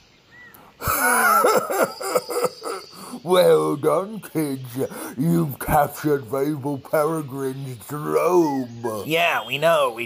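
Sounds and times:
breathy groaning voice: 2.2s - 3.3s, 4.8s - 5.3s.

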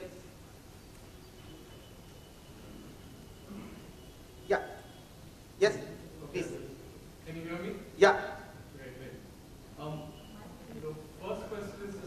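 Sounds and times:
faint high-pitched whine: 0.0s - 12.0s
low murmuring: 2.4s - 4.8s, 5.6s - 12.0s.

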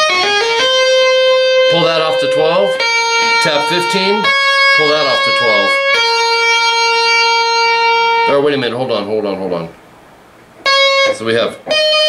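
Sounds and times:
electric guitar note sustaining: 0.0s - 8.7s, 10.6s - 12.0s.

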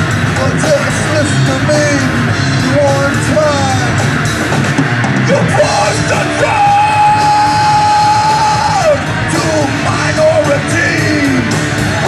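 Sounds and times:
live rock band playing: 0.0s - 12.0s
singer yelling high held note: 5.3s - 11.5s.

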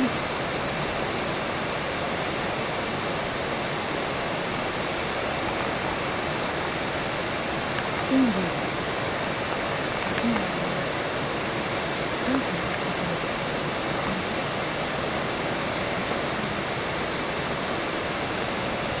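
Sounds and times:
waterfall rushing: 0.0s - 19.0s.

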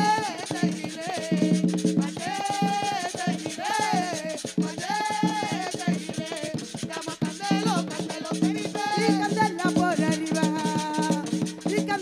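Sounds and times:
drums steady rhythm: 0.0s - 12.0s
jingling tambourines: 0.0s - 12.0s.

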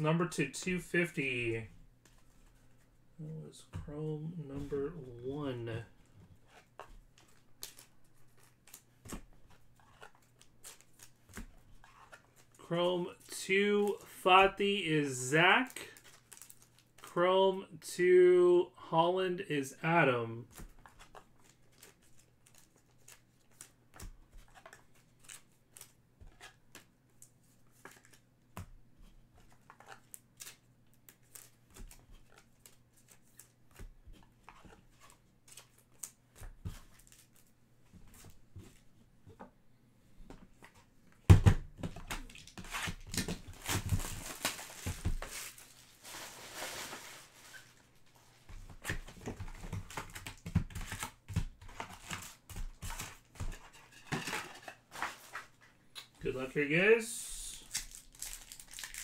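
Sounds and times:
packaging tearing and crinkling: 42.2s - 47.6s, 57.6s - 59.0s.

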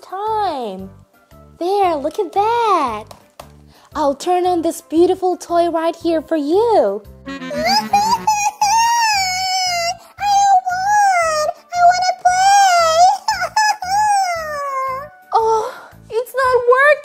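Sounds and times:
children's music with low beat: 6.5s - 9.0s.

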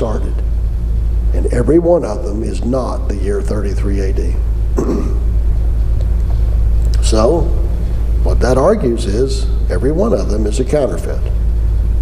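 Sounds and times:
man talking: 0.0s - 0.4s, 1.3s - 4.4s, 6.9s - 11.4s
loud low hum: 0.0s - 12.0s.

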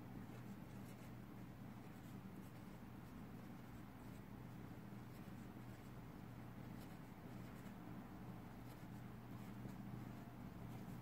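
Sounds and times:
low steady hum: 0.0s - 11.0s
marker scratching on paper: 0.2s - 11.0s.

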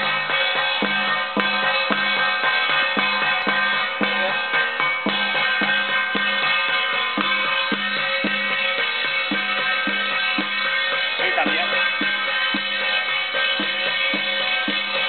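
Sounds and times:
drum beaten steadily: 0.0s - 15.0s
ringing cymbals and gongs: 0.0s - 15.0s.

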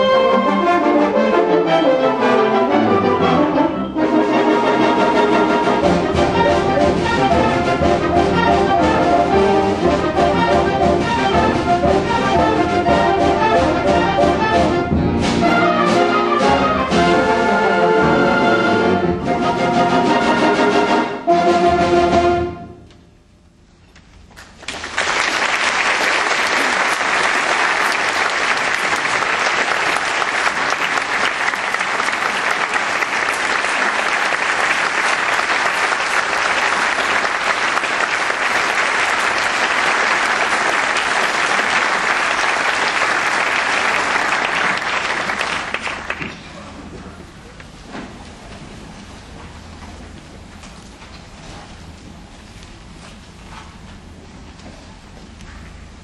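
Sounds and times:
symphonic band with brass: 0.0s - 23.0s, 25.2s - 46.3s
audience applause: 24.5s - 46.9s.

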